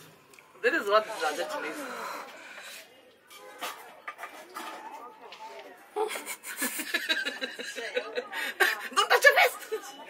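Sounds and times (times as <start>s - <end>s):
faint voices: 0.4s - 10.0s.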